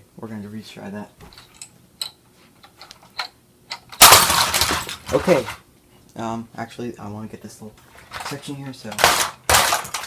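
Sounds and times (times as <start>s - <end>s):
plastic bricks crashing: 4.0s - 5.5s, 8.2s - 10.0s.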